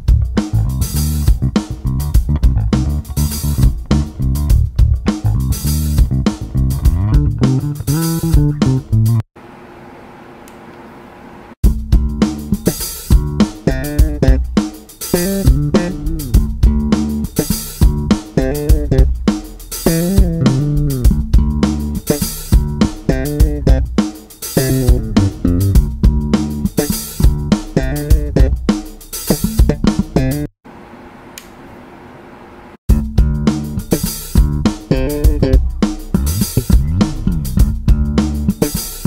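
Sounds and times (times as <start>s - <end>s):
slap bass funk line: 0.0s - 9.2s, 11.6s - 24.0s, 24.6s - 30.5s, 32.9s - 39.0s.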